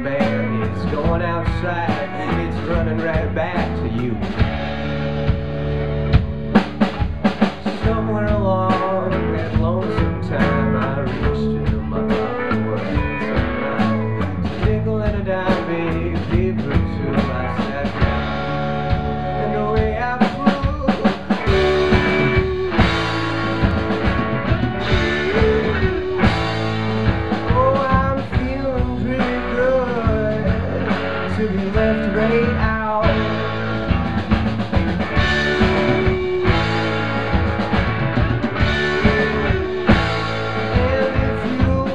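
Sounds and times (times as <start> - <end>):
bending lead guitar line: 0.0 - 41.9
drum kit: 0.0 - 41.9
electric guitars: 0.0 - 41.9.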